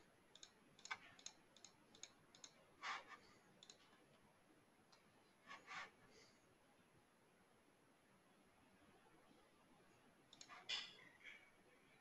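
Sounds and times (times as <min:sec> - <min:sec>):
keyboard clicks: 0:00.3 - 0:02.6, 0:03.6 - 0:03.8
keyboard scrape: 0:05.4 - 0:06.0.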